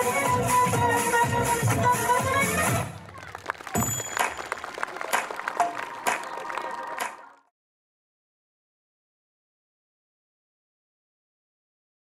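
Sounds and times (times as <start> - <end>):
upbeat music: 0.0 - 3.0, 3.8 - 7.3
audience applauding: 2.8 - 7.5.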